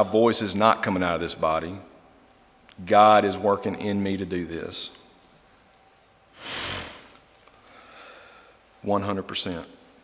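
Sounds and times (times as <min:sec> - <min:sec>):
man breathing in sharply: 0:06.4 - 0:08.7.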